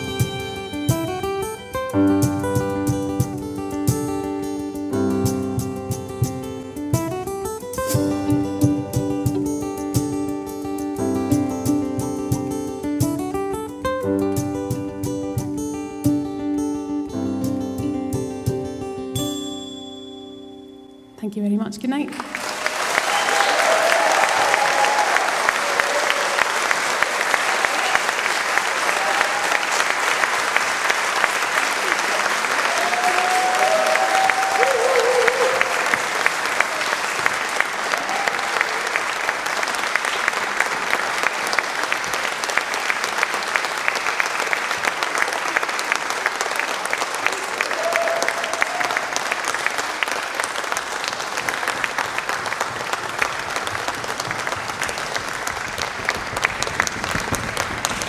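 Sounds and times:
audience applauding: 22.1 - 58.0
crowd calling out: 22.3 - 30.1, 31.8 - 39.1, 47.2 - 49.6.

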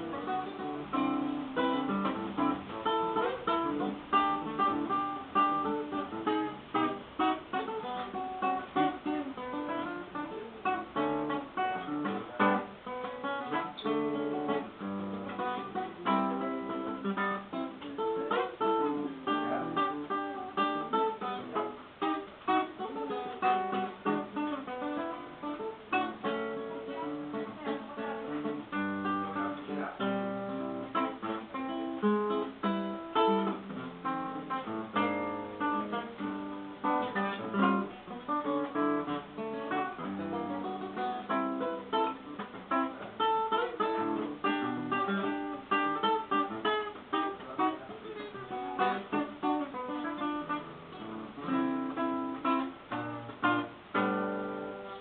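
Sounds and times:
fingerpicked classical guitar: 0.0 - 55.0.

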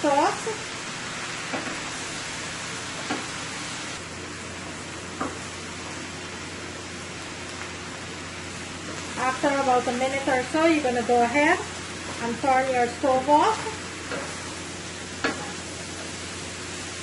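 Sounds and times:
food sizzling in a skillet: 0.0 - 17.0.

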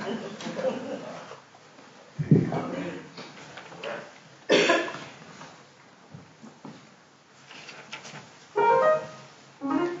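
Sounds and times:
person coughing: 4.5 - 5.0.

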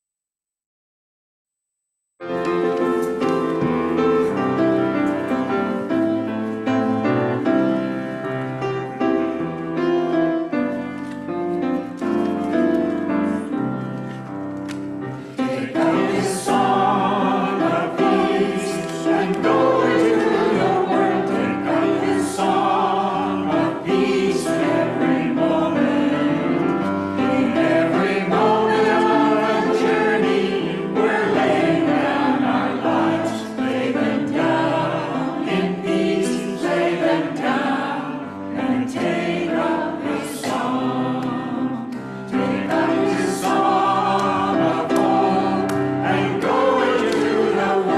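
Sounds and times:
congregation singing a hymn: 2.4 - 47.9.

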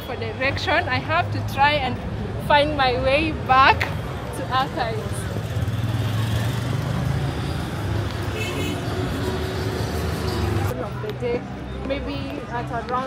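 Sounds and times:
street noise: 0.0 - 13.0
vehicle engine rumble: 0.0 - 13.0.

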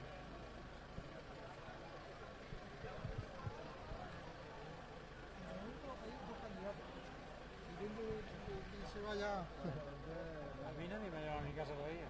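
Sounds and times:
steady background noise: 0.0 - 12.0.

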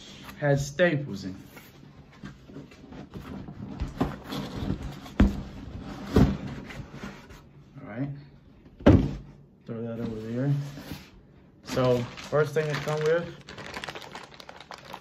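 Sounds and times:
hollow knocks and thumps: 2.9 - 7.1.

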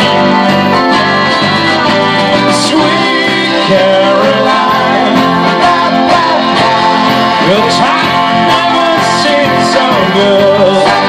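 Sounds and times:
live pop-rock band: 0.0 - 11.0
saxophone line: 0.0 - 11.0
sliding lead guitar notes: 0.0 - 11.0.

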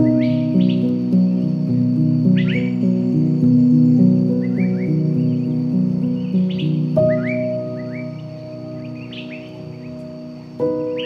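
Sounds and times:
birds chirping: 0.0 - 11.0
slow piano music: 0.0 - 11.0.

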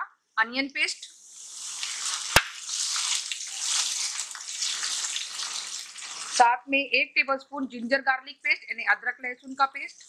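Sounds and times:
onion paste sizzling in hot oil: 0.8 - 6.6, 9.4 - 10.0.

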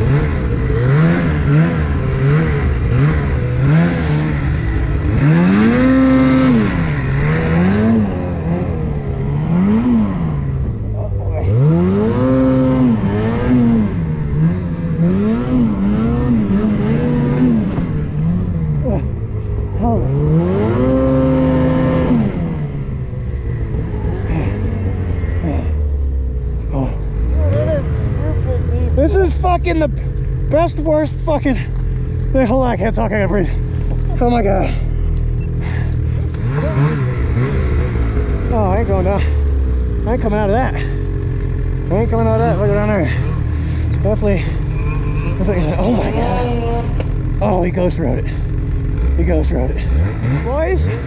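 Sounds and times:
snowmobile engine revving: 0.0 - 51.0.

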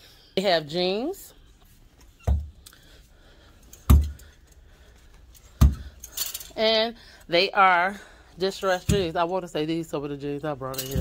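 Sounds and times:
metal clothes hangers clacking: 3.6 - 6.9, 8.4 - 9.6, 10.4 - 11.0.

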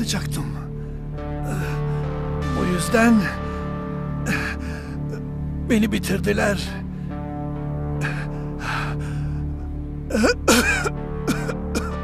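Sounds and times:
low dramatic music: 0.0 - 12.0
man breathing heavily and groaning: 0.7 - 2.4, 3.4 - 5.6, 6.8 - 12.0.

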